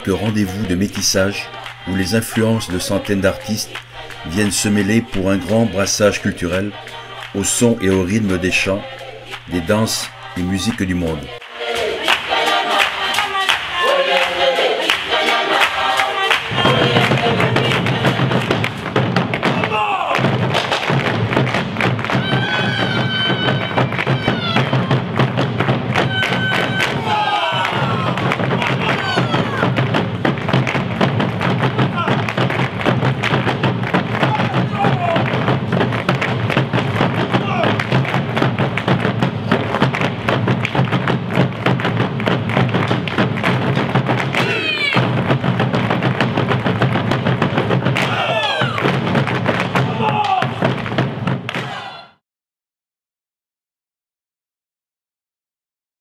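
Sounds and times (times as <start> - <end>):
boots stamping rhythmically: 0.0 - 51.5.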